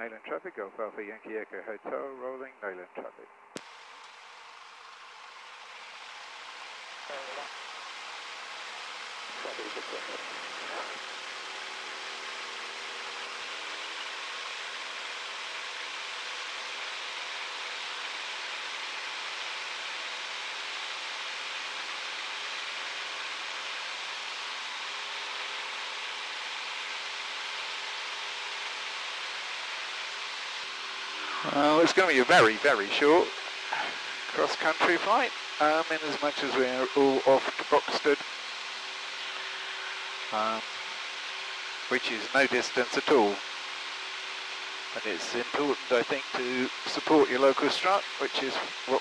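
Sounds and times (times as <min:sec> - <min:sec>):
light aircraft piston engine: 0:03.0 - 0:49.0.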